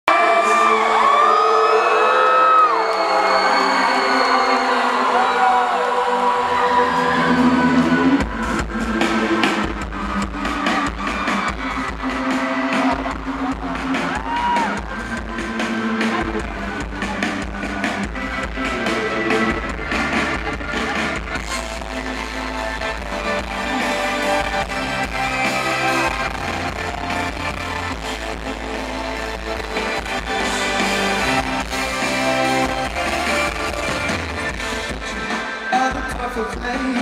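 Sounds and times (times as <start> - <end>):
crowd whooping and screaming: 0.0 - 37.0
live band music: 7.0 - 37.0.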